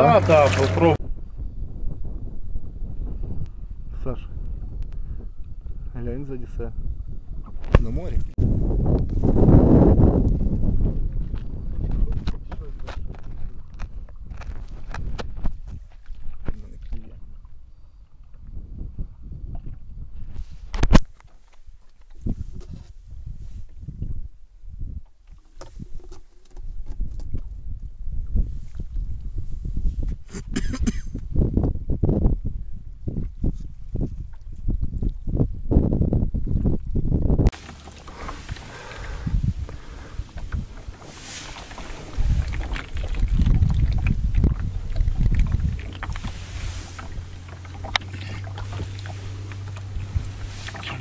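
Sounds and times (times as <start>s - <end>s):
wind buffeting microphone: 0.0s - 21.2s, 22.1s - 51.0s
water around boat: 0.0s - 51.0s
low steady hum: 37.6s - 51.0s.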